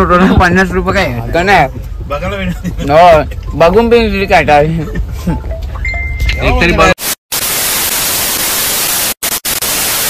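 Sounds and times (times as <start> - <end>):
television static hiss: 6.8 - 10.0.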